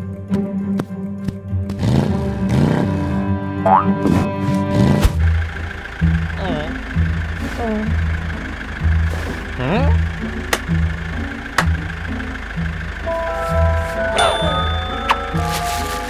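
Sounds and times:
cartoon car engine: 1.7s - 16.0s
cartoon music: 3.6s - 4.3s, 13.1s - 15.6s
comic boing: 3.7s - 4.0s.

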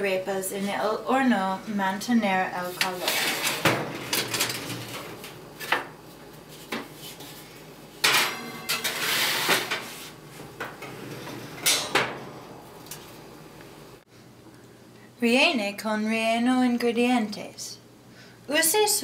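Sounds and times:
metal tray clattering in oven: 8.0s - 9.9s.

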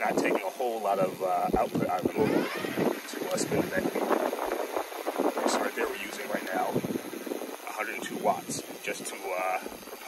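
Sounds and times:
man talking: 0.0s - 4.2s, 5.4s - 6.8s, 7.6s - 9.7s
hub motor turning wheel: 0.0s - 10.0s.

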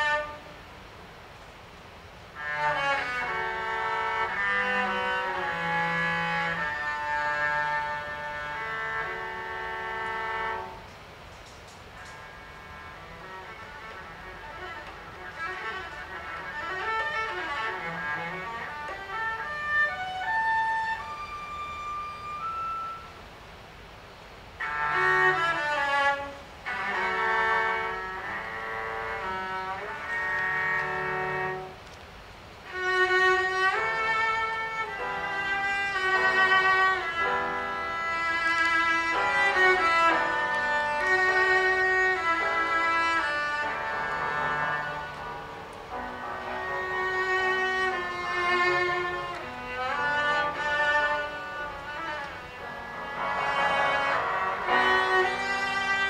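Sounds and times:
bowed cello: 0.0s - 0.7s, 2.3s - 11.0s, 12.0s - 23.2s, 24.6s - 56.0s
grand piano accompaniment: 0.0s - 56.0s.

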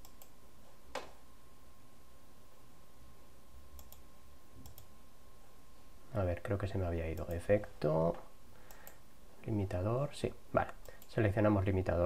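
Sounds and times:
computer mouse clicks: 0.0s - 0.4s, 3.8s - 4.0s, 4.6s - 4.9s, 8.6s - 9.0s
faint high hum: 0.0s - 12.0s.

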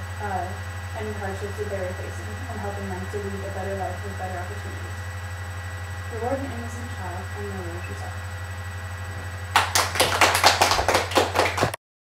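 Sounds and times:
low steady hum: 0.0s - 11.8s
people clapping: 9.5s - 11.8s.

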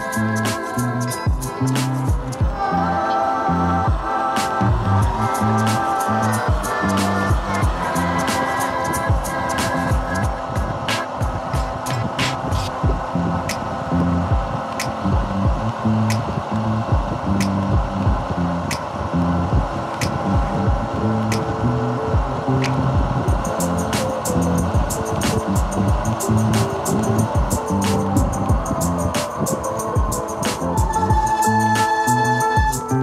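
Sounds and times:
slow beat music with bass line: 0.0s - 33.0s
ticking percussion: 0.0s - 33.0s.

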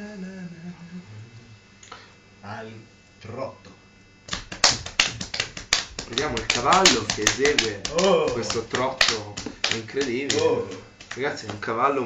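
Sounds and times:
hand slaps: 4.3s - 11.7s
man chanting: 6.0s - 12.0s.

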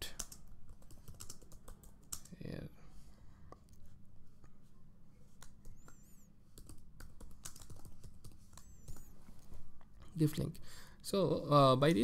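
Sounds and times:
keyboard typing: 0.1s - 2.4s, 5.4s - 9.2s.

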